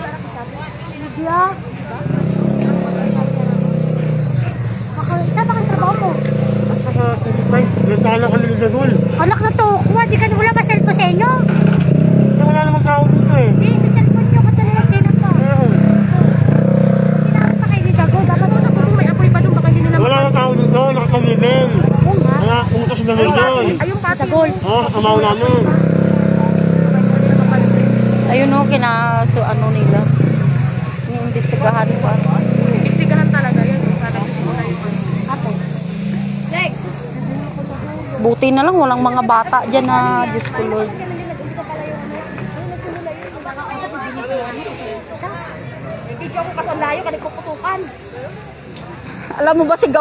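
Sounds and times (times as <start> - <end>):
motorcycle engine idling: 0.0 - 43.0
people talking: 0.0 - 50.0.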